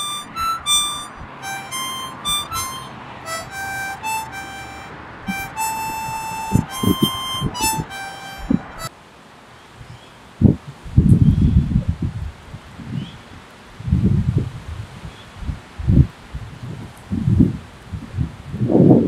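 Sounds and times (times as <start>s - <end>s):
wind buffeting microphone: 10.4s - 13.2s, 13.8s - 19.0s.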